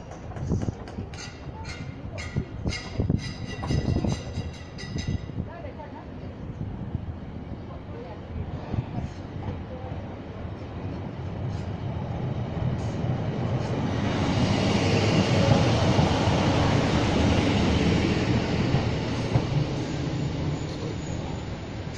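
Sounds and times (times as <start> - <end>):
train wheels on rails: 0.0 - 5.5, 7.7 - 21.9
diesel train engine: 0.0 - 21.9.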